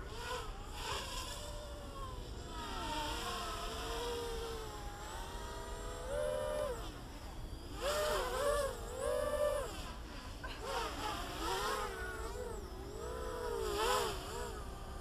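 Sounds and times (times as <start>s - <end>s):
quadcopter motors buzzing: 0.0s - 15.0s.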